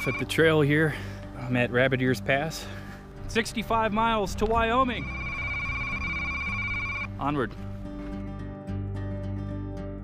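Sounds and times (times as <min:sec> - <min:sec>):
high electronic beep tone: 0:00.0 - 0:00.3, 0:04.9 - 0:07.1
faint background music: 0:00.0 - 0:09.6.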